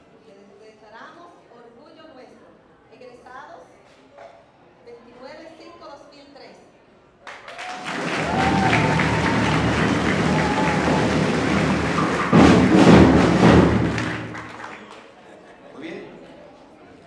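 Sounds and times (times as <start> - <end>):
crowd cheering: 7.3 - 15.1
crowd applauding: 7.3 - 15.2.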